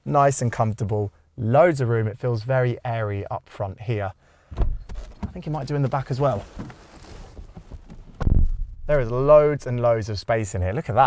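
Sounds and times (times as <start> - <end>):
faint low background noise: 0.0 - 11.0
muffled low thump: 4.6 - 5.5, 7.4 - 9.1.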